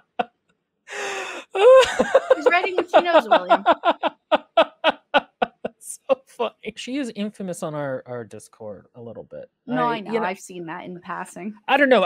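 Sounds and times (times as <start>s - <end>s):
wheezing gasp for breath: 0.9s - 1.8s
man laughing hard: 1.0s - 5.9s.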